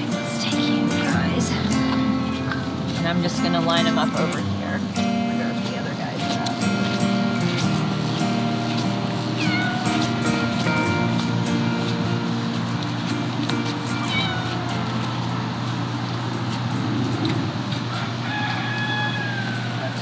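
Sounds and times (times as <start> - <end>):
cats meowing: 9.0 - 11.4, 13.4 - 15.6, 16.4 - 20.0.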